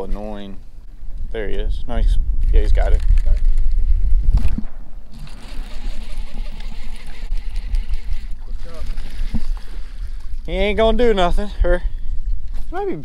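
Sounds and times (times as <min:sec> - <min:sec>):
wind buffeting microphone: 0:00.8 - 0:13.0.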